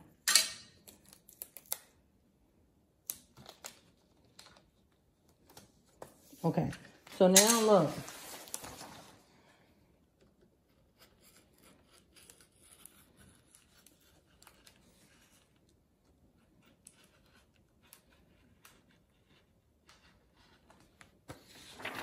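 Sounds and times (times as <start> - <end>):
paper rustling and tapping: 20.7 - 22.0.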